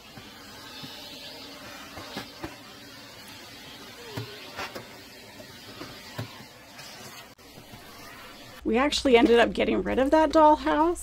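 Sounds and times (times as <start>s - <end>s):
vacuum cleaner running: 0.0s - 8.6s.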